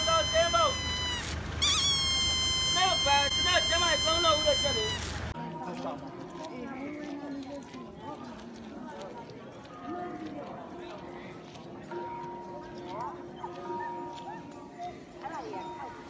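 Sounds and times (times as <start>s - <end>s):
long held tones: 0.0s - 5.1s
voices: 0.0s - 16.0s.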